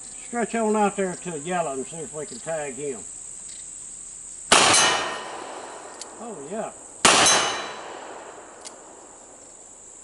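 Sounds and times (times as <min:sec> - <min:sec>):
high-pitched insect buzz: 0:00.0 - 0:05.0
revolver gunshot: 0:04.5 - 0:06.2, 0:07.0 - 0:09.1.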